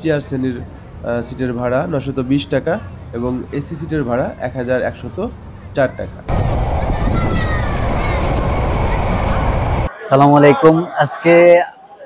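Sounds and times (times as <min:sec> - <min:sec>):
passenger train rumbling past: 0:06.3 - 0:09.9.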